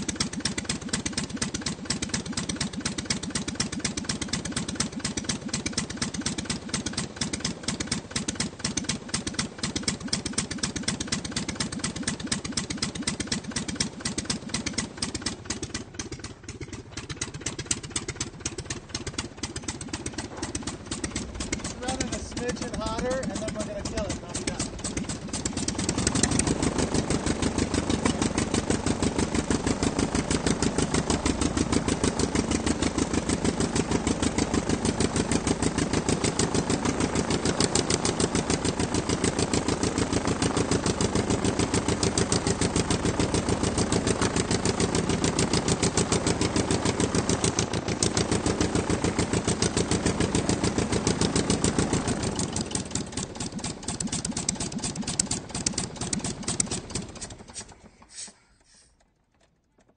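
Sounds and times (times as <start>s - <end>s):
aircraft piston engine running: 0.0s - 59.1s.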